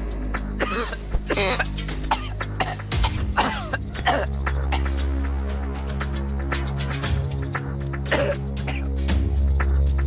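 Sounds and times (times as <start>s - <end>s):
film music: 0.0s - 10.0s
man coughing: 0.6s - 4.9s, 8.1s - 8.9s.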